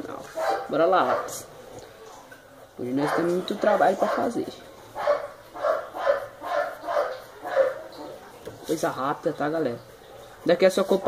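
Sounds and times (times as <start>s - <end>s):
dog barking: 0.4s - 1.5s, 3.0s - 8.2s.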